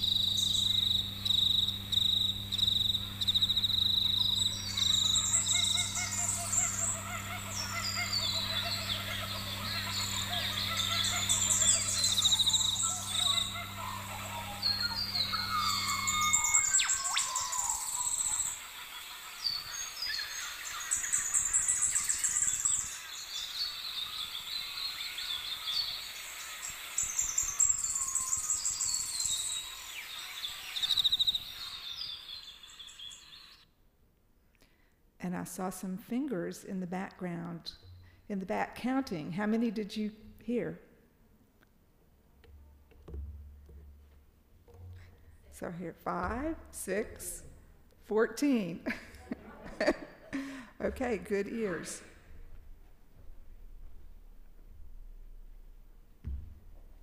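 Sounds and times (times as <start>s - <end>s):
high insect trill: 0.0s - 18.8s, 20.3s - 33.3s
low hum: 0.0s - 18.8s
birds calling and singing: 0.0s - 33.6s.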